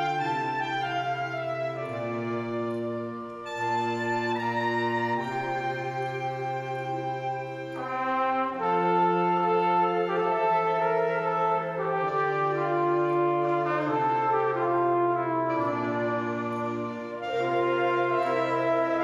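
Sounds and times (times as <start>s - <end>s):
flugelhorn slow melody: 0.0s - 19.0s
low brass bass line: 0.0s - 19.0s
wind band held chords: 0.0s - 19.0s.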